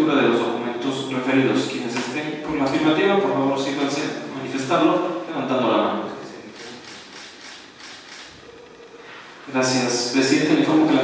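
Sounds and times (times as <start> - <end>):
camera shutter clicks: 6.6 - 8.4.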